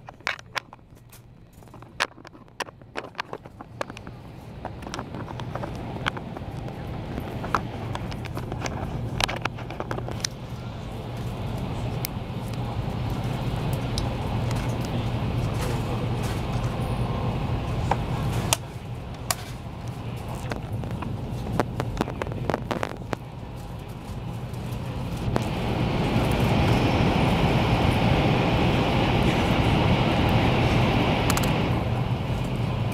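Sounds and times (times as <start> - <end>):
train cabin rumble and rush: 0.0 - 32.9.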